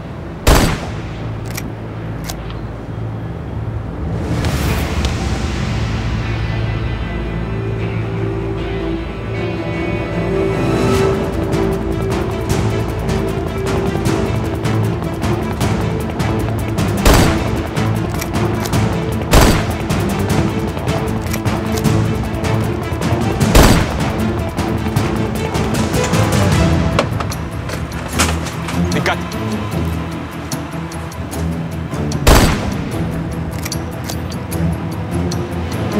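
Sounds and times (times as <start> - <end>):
tense dramatic music: 0.0 - 35.9
loud rifle shots: 0.4 - 1.4, 17.0 - 17.7, 19.3 - 20.0, 23.5 - 24.2, 32.3 - 33.0
rapid gunfire crackle: 0.5 - 1.4, 16.9 - 18.1, 19.3 - 20.4, 23.4 - 24.3, 32.3 - 33.2.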